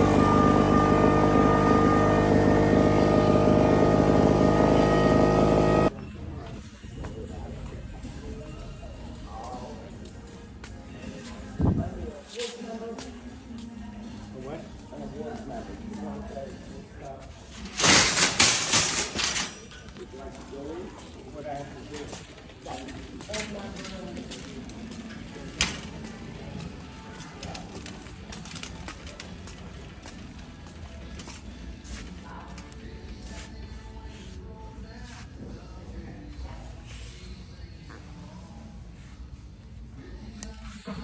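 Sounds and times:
faint store music: 0.0s - 41.0s
metal shopping cart rattling: 17.6s - 32.5s.

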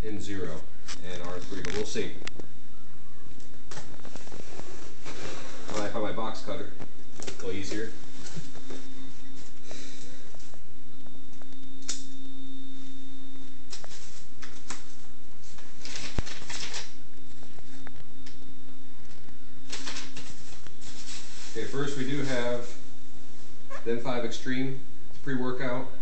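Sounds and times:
faint low hum: 0.0s - 26.0s.

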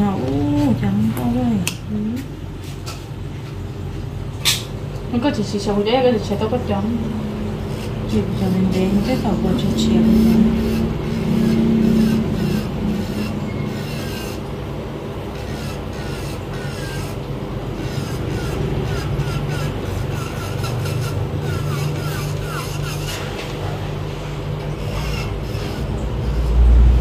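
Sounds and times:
electric nail drill filing nail: 7.6s - 14.6s, 15.2s - 23.5s, 24.6s - 27.0s.

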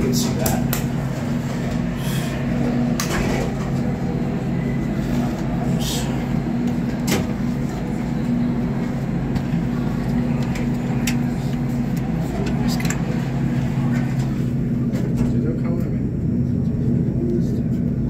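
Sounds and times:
elevator pump motor humming: 0.0s - 18.0s.

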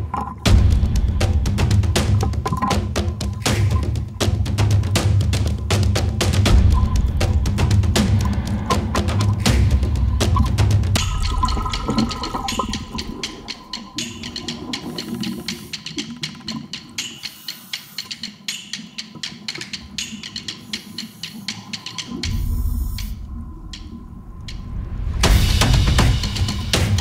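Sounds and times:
water rushing and bubbling underwater: 0.0s - 4.2s, 6.5s - 17.0s, 19.4s - 25.2s
soft background music: 0.0s - 27.0s
crackling clicks: 2.1s - 3.8s, 10.2s - 24.8s.

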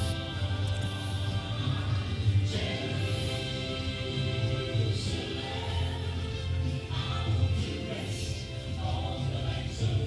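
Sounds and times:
choir singing to music: 0.0s - 10.0s.

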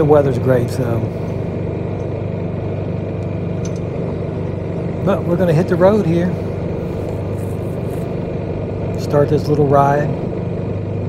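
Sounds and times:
scooter engine droning: 0.0s - 11.0s.

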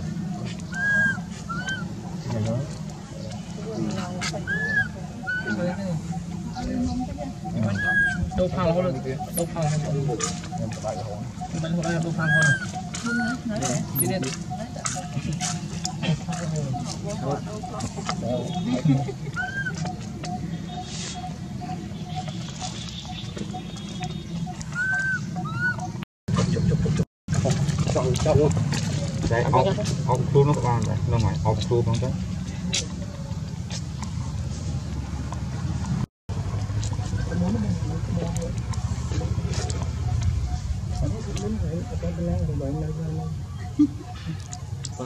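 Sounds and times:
baby monkey crying call: 0.7s - 2.0s, 4.4s - 5.8s, 7.4s - 8.5s, 11.4s - 14.2s, 18.6s - 22.8s, 24.5s - 26.0s.

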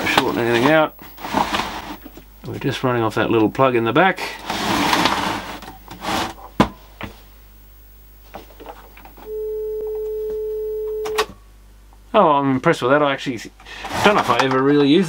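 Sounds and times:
rustling shuffle of handling: 0.0s - 2.8s
mid-pitched test tone: 9.2s - 11.2s.

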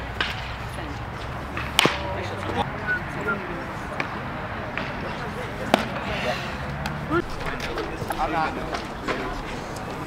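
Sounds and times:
baseball hitting catcher's mitt: 1.6s - 2.0s.

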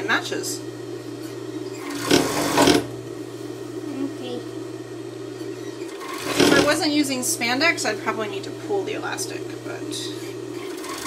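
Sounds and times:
sewing machine motor humming: 1.3s - 3.0s, 5.5s - 11.0s.

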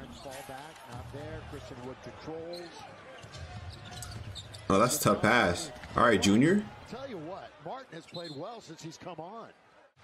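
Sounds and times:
arena crowd noise: 0.0s - 10.0s
commentator talking: 4.7s - 7.1s.

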